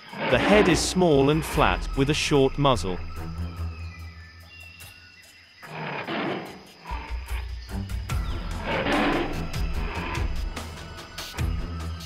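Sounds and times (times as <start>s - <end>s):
background music with low bass: 0.8s - 5.0s, 7.2s - 12.0s
growling animal roars: 8.4s - 10.4s.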